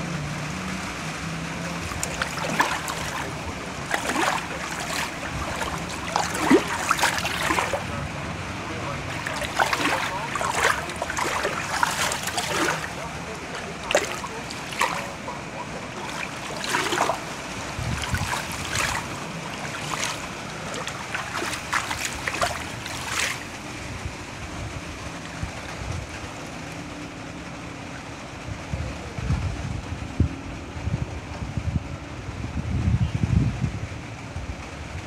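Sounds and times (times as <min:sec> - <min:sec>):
water splashing onto phone: 0:01.8 - 0:07.9, 0:09.1 - 0:23.6.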